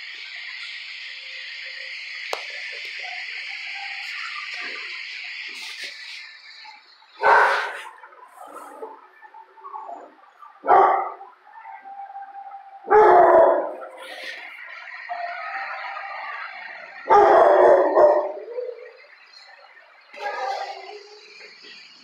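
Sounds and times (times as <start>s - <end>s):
dog barking loudly: 7.2s - 9.0s, 10.6s - 11.3s, 12.9s - 14.0s, 17.1s - 18.5s.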